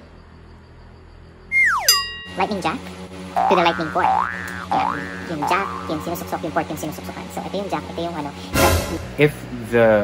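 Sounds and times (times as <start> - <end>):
low hum: 0.0 - 9.6
whistle sliding down in pitch: 1.5 - 2.1
short ringing tone: 1.6 - 2.4.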